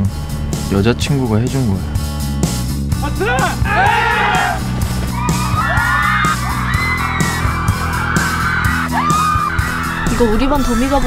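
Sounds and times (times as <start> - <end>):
trailer music with steady beat: 0.0 - 11.0
young men shouting: 3.0 - 10.0.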